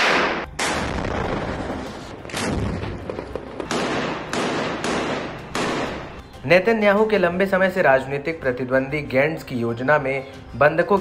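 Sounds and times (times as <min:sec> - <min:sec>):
gunshots echoing: 0:00.0 - 0:06.2.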